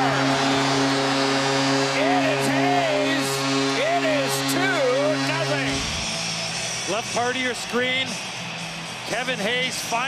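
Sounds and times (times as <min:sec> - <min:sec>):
arena goal horn: 0:00.0 - 0:05.9.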